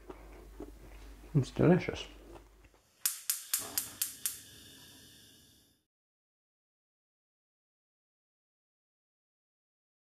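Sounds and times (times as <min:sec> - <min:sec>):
sharp clicks with ringing tail: 0:03.0 - 0:04.8.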